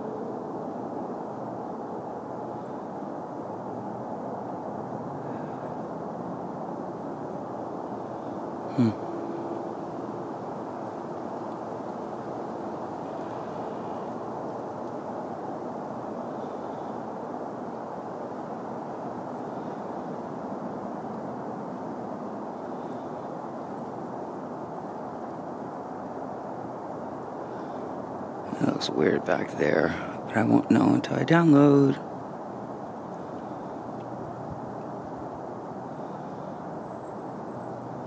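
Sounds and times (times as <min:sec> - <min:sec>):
faint steady hum: 0:00.0 - 0:38.0
outdoor background noise: 0:00.0 - 0:38.0.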